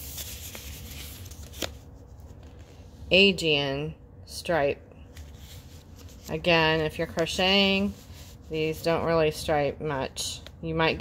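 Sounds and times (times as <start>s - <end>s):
rustling of yarn and paper: 0.0s - 2.8s, 5.1s - 9.0s.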